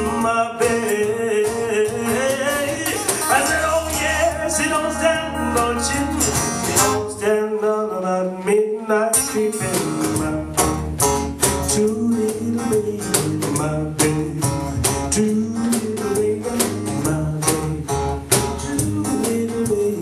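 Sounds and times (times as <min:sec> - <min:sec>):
acoustic guitar strumming: 0:00.0 - 0:20.0
cajon beat: 0:00.0 - 0:20.0.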